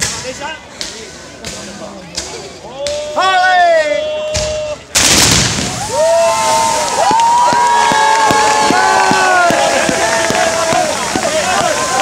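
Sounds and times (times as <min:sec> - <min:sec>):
firework cracks: 0:04.9 - 0:12.0.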